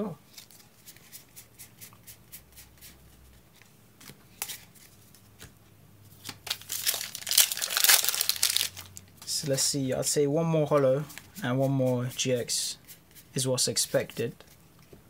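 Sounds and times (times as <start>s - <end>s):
foil wrapper crinkling and tearing: 6.4s - 9.0s.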